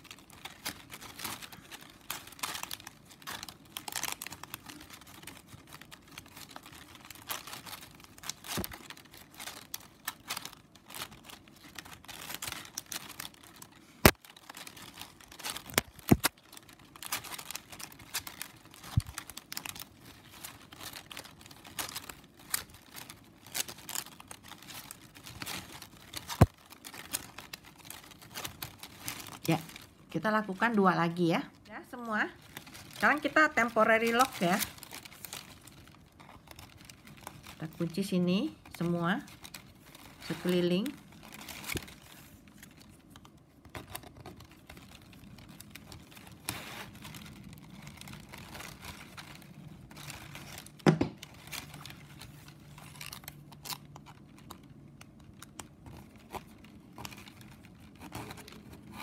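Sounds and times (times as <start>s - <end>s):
plastic strapping crinkling: 0.0s - 59.0s.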